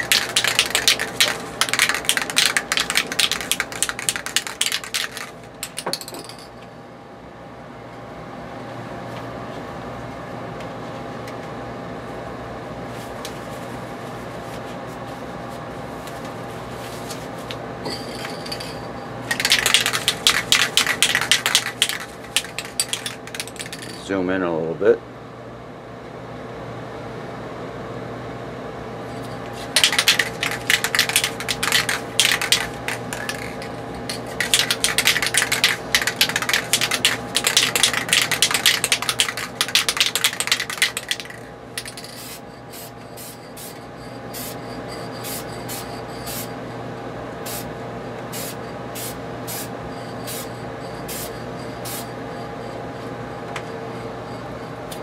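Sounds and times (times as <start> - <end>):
aerosol can ball rattling: 0.0 - 6.2, 19.3 - 24.0, 29.7 - 42.4
steady hum: 0.0 - 55.0.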